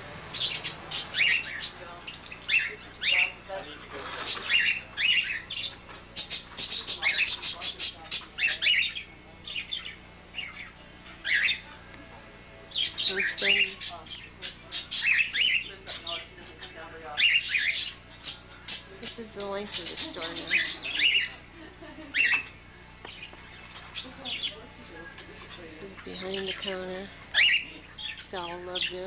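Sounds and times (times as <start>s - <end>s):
parakeets chirping and chattering: 0.0s - 29.0s.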